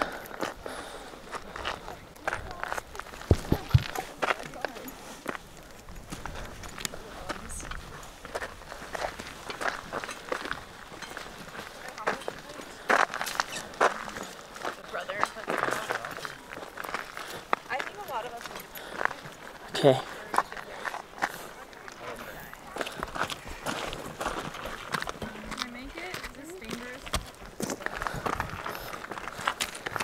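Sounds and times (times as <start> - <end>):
footsteps on rocky trail: 0.0 - 30.0
voices in background: 0.0 - 30.0.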